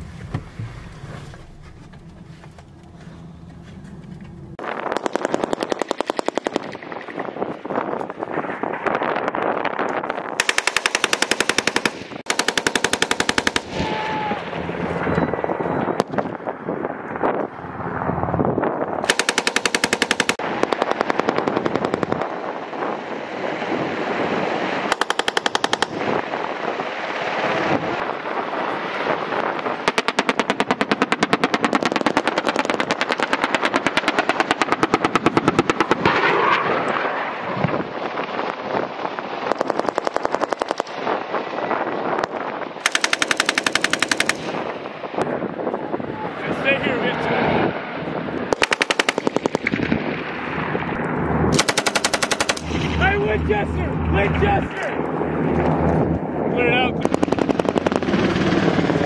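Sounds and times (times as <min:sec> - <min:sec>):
steady noisy rumble: 0:00.0 - 0:08.4, 0:41.8 - 0:59.0
machine-gun fire in bursts: 0:04.6 - 0:07.2, 0:10.4 - 0:14.0, 0:19.0 - 0:22.5, 0:24.8 - 0:27.7, 0:29.7 - 0:36.5, 0:39.4 - 0:41.2, 0:42.8 - 0:44.8, 0:48.5 - 0:50.3, 0:51.5 - 0:53.0, 0:57.0 - 0:59.0.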